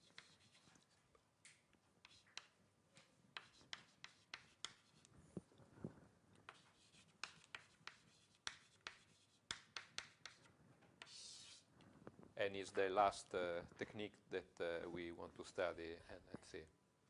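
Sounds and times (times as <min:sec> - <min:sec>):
faint taps of writing on board: 0:03.4 - 0:05.5, 0:06.4 - 0:11.2.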